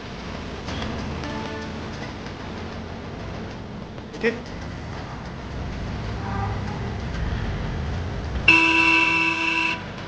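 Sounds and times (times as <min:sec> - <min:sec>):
road traffic rumble: 0:00.0 - 0:10.0
vehicle horn honking: 0:08.5 - 0:09.9.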